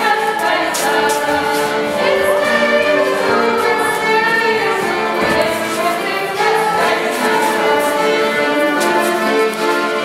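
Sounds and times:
accordion: 0.0s - 10.0s
fiddle: 0.0s - 10.0s
group singing: 0.0s - 10.0s.

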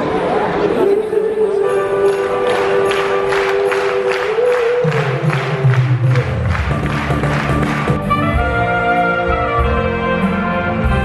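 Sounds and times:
circus band playing: 1.0s - 11.0s
audience applause: 2.1s - 8.1s.

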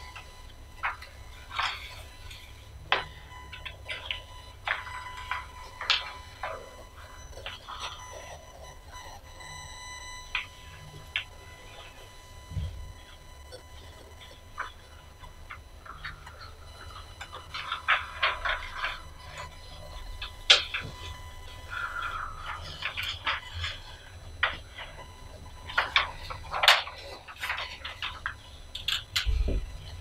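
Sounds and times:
faint high whine: 0.0s - 30.0s
low electrical hum: 0.0s - 30.0s.

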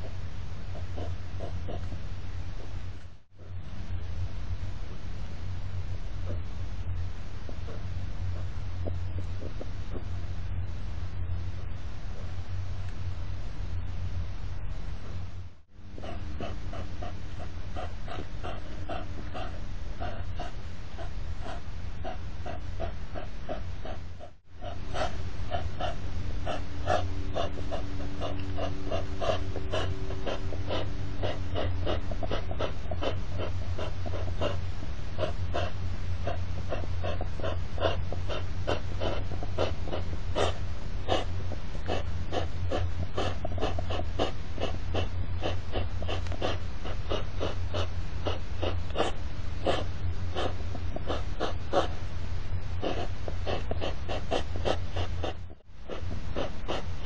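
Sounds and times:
hedgehogs snorting: 0.0s - 2.8s, 7.4s - 10.3s, 15.9s - 52.1s, 52.7s - 57.0s
steady low hum: 0.0s - 57.0s.

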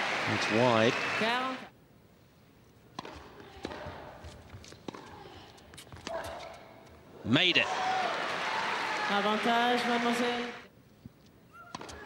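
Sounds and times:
tennis ball bouncing on court: 2.9s - 5.2s, 11.7s - 12.0s
tennis ball struck by rackets: 3.0s - 4.1s.

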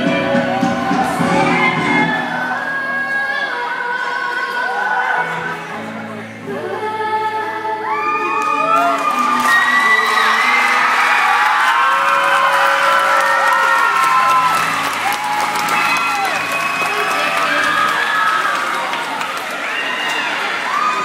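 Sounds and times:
crowd cheering and shouting: 0.0s - 5.6s, 7.7s - 21.0s
music over sound system: 0.0s - 11.9s.

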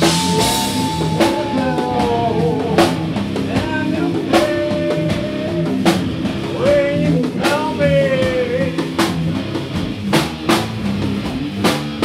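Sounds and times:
drum kit hits: 0.0s - 12.0s
rock band playing: 0.0s - 12.0s.

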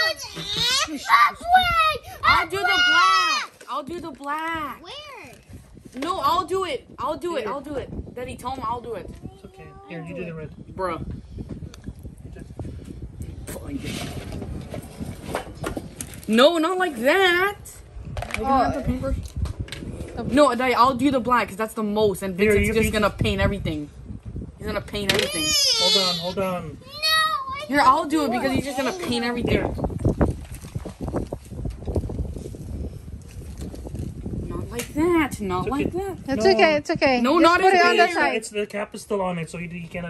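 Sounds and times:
faint children's voices: 9.1s - 10.1s.

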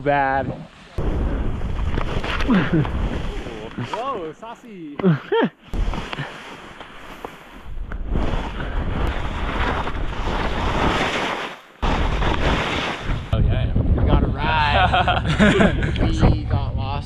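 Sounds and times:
skis hissing over snow: 5.8s - 13.2s
wind noise on microphone: 11.8s - 17.0s.

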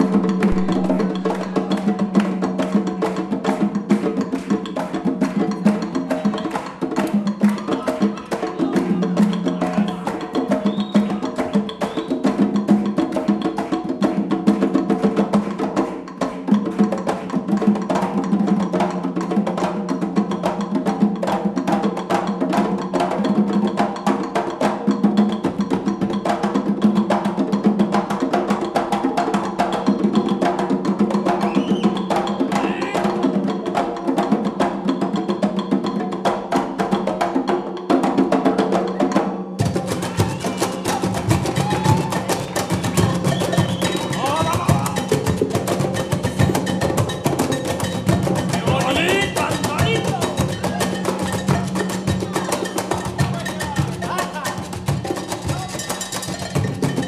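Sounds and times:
hand drums playing fast rhythm: 0.0s - 57.0s.

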